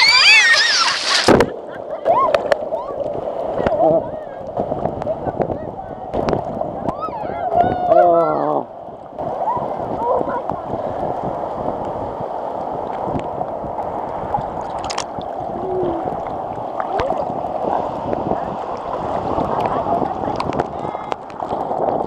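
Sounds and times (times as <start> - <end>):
ocean waves rushing: 0.0 - 22.0
small water splashes: 0.0 - 22.0
person calling out: 15.5 - 16.2.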